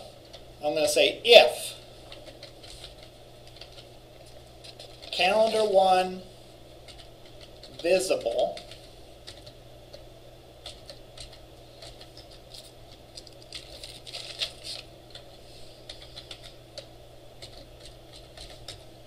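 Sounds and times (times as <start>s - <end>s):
computer keyboard typing: 2.0s - 5.6s, 6.8s - 10.0s, 10.6s - 19.0s.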